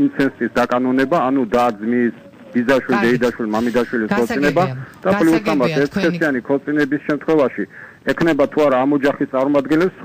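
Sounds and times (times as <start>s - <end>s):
person talking: 0.0s - 7.0s.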